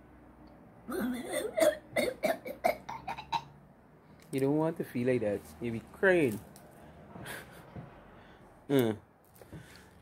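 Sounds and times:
child coughing: 0.9s - 3.5s.

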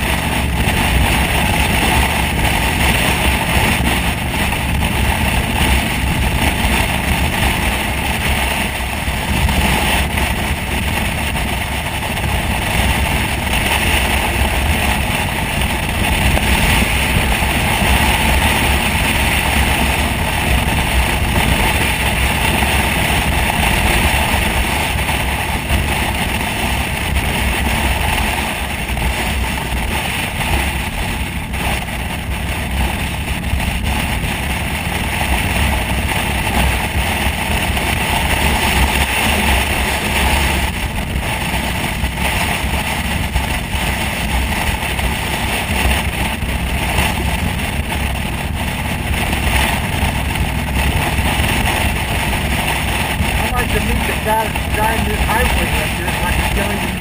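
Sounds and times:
motorcycle engine drone: 0.0s - 57.0s
wind rushing over microphone: 0.0s - 57.0s.

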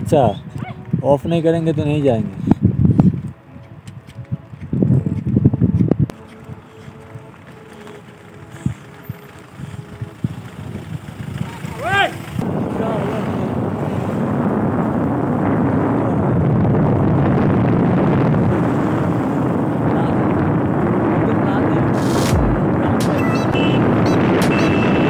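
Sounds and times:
wind buffeting microphone: 0.0s - 25.0s
motorcycle riding: 1.9s - 25.0s.

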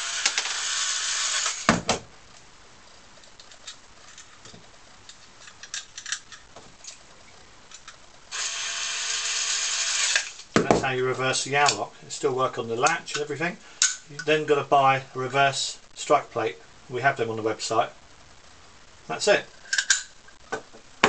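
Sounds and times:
cordless screwdriver whirring: 0.0s - 1.7s, 8.4s - 10.4s.

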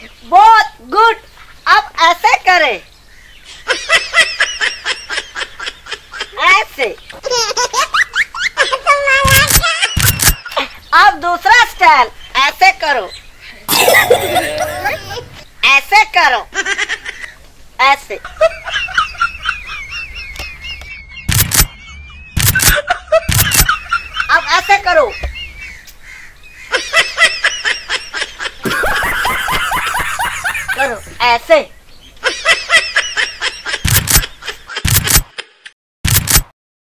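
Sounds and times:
high-pitched laughter: 7.2s - 10.8s, 13.7s - 15.4s, 18.3s - 25.2s, 26.7s - 31.2s, 32.2s - 35.8s
person speaking: 8.8s - 10.3s, 13.7s - 15.4s, 30.5s - 31.7s.

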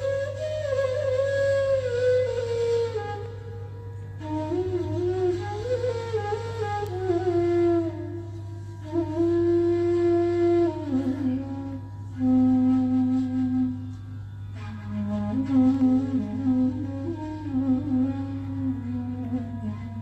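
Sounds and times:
sitar melody with sliding notes: 0.0s - 20.0s.

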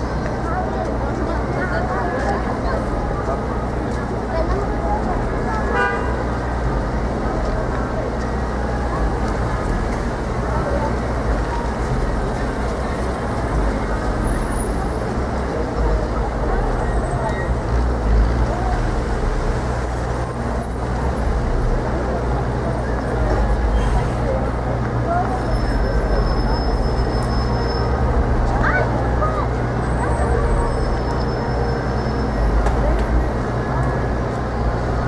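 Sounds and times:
cars driving through: 0.0s - 35.0s
low traffic rumble: 0.0s - 35.0s
passers-by talking: 0.0s - 35.0s.

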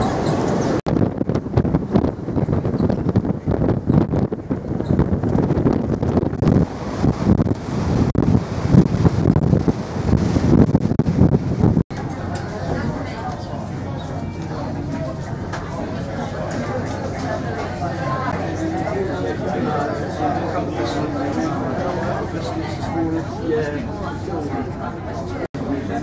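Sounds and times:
wind buffeting microphone: 0.0s - 24.8s.

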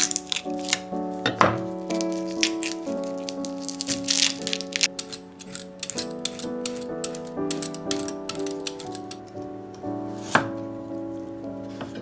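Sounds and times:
soft background music: 0.0s - 12.0s
knife chopping on wooden board: 10.2s - 10.5s.

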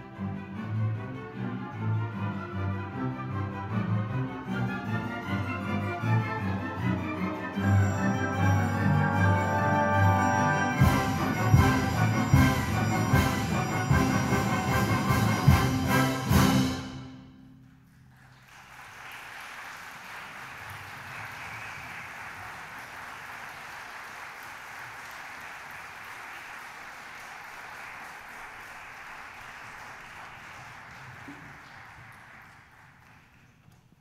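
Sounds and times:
audience applauding: 17.6s - 34.0s.

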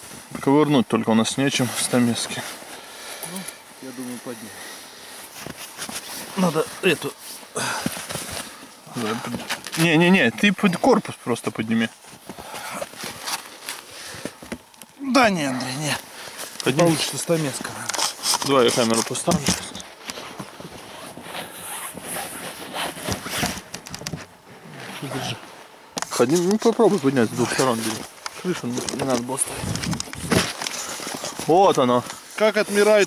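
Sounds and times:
rustles and scuffs in snow: 3.8s - 10.0s.

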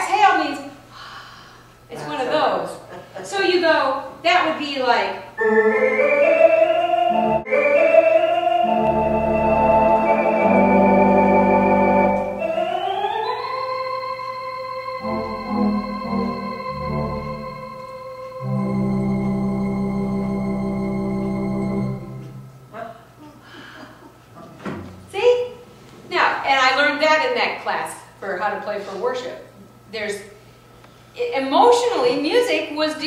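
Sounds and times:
organ sustained chords: 5.4s - 22.7s.

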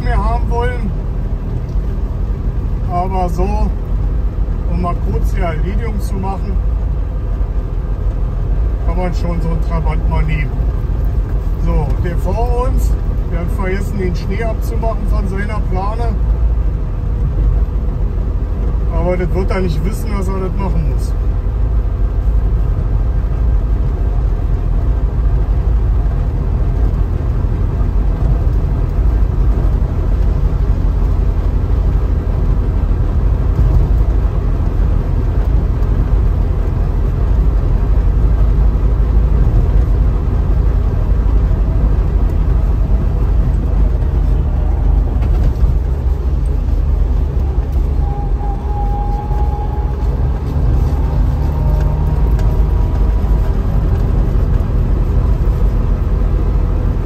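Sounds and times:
road noise: 0.0s - 57.0s.

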